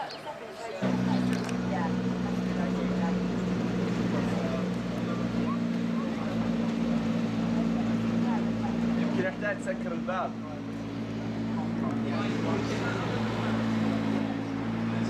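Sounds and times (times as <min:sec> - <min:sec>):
car engine idling: 0:00.8 - 0:15.0.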